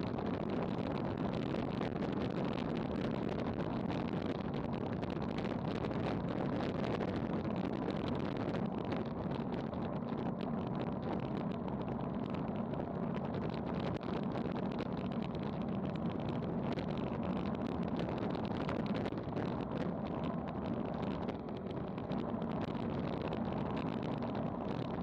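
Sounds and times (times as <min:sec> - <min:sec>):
wind rushing over microphone: 0:00.0 - 0:25.0.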